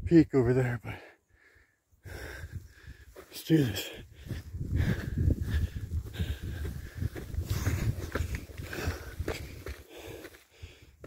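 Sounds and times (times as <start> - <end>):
heavy breathing: 0.9 - 11.0
footsteps and scuffs on rock: 3.2 - 10.8.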